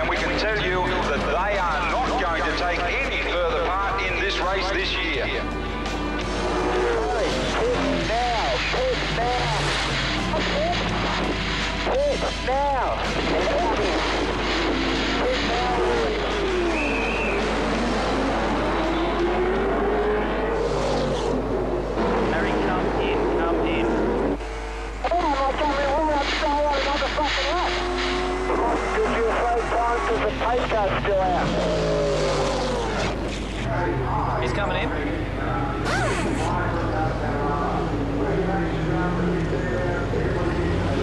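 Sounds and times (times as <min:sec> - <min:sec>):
race car engines revving and passing: 0:00.0 - 0:41.0
driver's voice over radio: 0:25.0 - 0:31.6.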